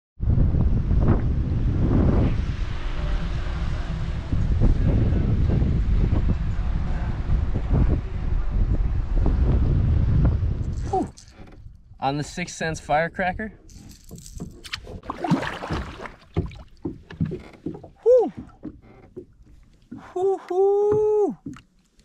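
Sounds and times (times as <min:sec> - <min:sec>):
wind buffeting microphone: 0:00.2 - 0:19.6.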